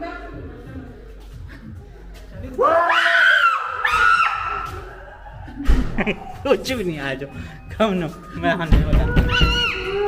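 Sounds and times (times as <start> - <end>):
high-pitched scream: 2.6 - 4.7.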